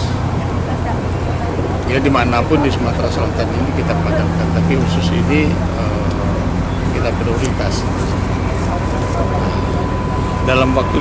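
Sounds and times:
faint crowd voices: 0:00.0 - 0:11.0
vehicle engine idling: 0:00.0 - 0:11.0.

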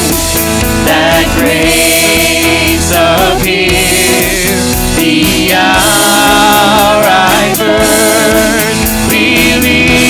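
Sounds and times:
guitar accompaniment: 0:00.0 - 0:10.0
singers holding long notes: 0:00.8 - 0:10.0.

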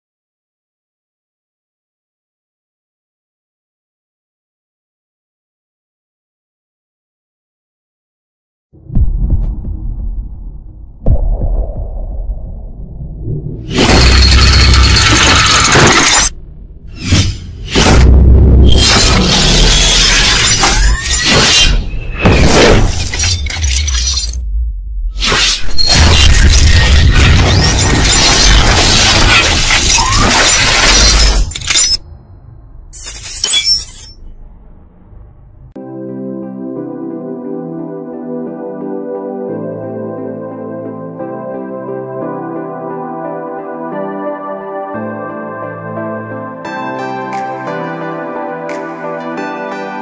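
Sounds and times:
deep cinematic hits: 0:08.8 - 0:15.0, 0:16.3 - 0:19.5, 0:24.4 - 0:25.2, 0:34.2 - 0:35.8
low throbbing rumble: 0:08.8 - 0:15.2, 0:16.3 - 0:18.7, 0:24.4 - 0:25.2, 0:34.2 - 0:35.8.

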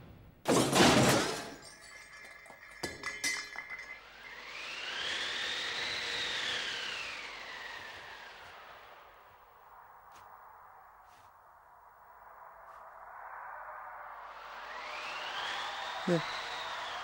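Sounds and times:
glassy clinks and tinkles: 0:01.3 - 0:04.6
whistling tone rising and falling: 0:03.4 - 0:09.2, 0:12.4 - 0:17.0.

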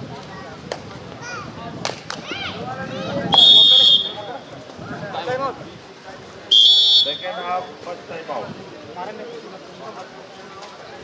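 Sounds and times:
voices calling out: 0:00.0 - 0:11.0
sharp slap-like cracks: 0:01.8 - 0:02.2.

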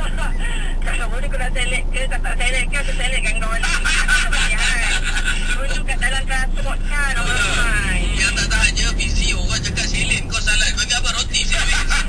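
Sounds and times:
low hum of car: 0:00.0 - 0:12.0
voices talking in a car: 0:00.0 - 0:12.0.

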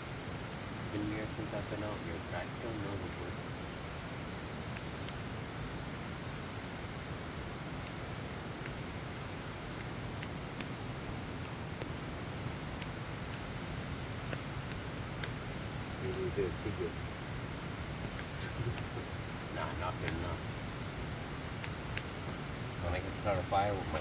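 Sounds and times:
fire hissing: 0:00.0 - 0:24.0
wood fire crackling and popping: 0:00.0 - 0:24.0.

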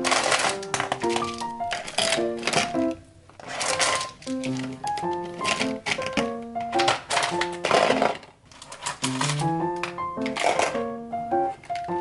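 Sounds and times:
clatter of pens: 0:00.0 - 0:02.8, 0:03.4 - 0:10.8
plastic pens clicking and rattling: 0:00.0 - 0:10.9, 0:11.5 - 0:12.0
gentle background music: 0:00.0 - 0:12.0.

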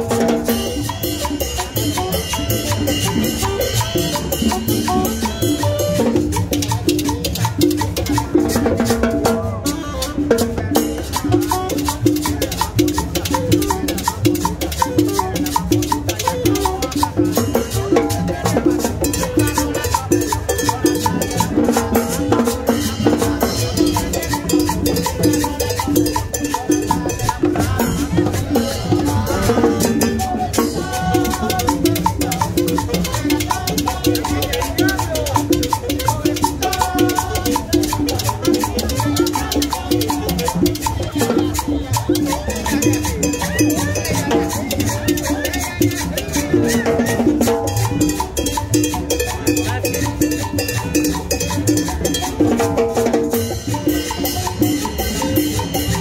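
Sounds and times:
saxophone melody: 0:00.0 - 0:07.3, 0:09.5 - 0:21.4
live salsa band: 0:00.0 - 0:56.0
timbales and congas: 0:00.0 - 0:56.0.

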